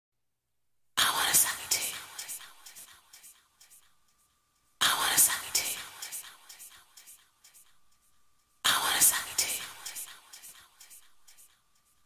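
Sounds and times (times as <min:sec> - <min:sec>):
whispered vocal phrase with echo: 0:01.0 - 0:03.9, 0:04.8 - 0:07.8, 0:08.6 - 0:11.6.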